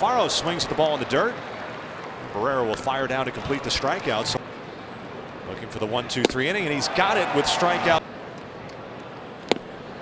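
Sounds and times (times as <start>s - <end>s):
ballpark crowd murmur: 0.0s - 10.0s
ball smacking into catcher's mitt: 9.5s - 9.8s.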